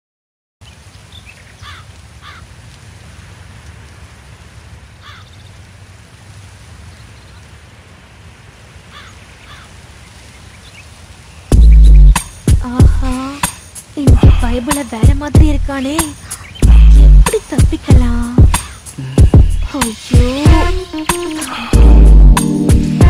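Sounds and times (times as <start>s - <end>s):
birds calling: 0.6s - 2.5s, 5.0s - 5.6s, 8.9s - 23.0s
steady low rumble: 11.5s - 13.2s, 14.0s - 15.8s, 16.6s - 20.9s, 21.8s - 23.0s
loud low boom: 21.8s - 23.0s.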